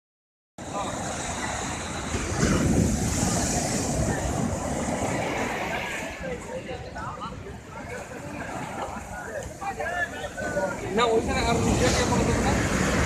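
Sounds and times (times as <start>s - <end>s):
surf breaking on beach: 0.6s - 13.0s.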